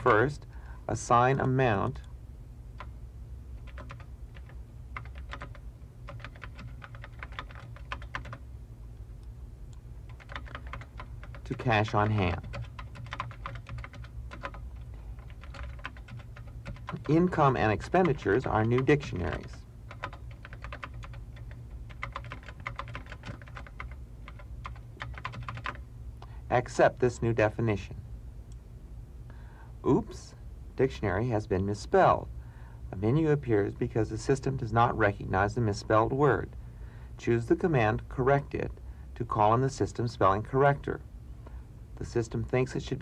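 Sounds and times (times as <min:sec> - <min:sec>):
steady low hum: 0:00.0 - 0:43.0
typing on computer keyboard: 0:03.6 - 0:08.4, 0:10.1 - 0:25.8.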